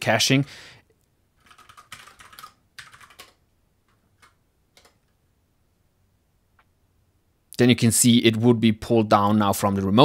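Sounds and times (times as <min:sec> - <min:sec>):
computer keyboard typing: 0:01.4 - 0:05.2.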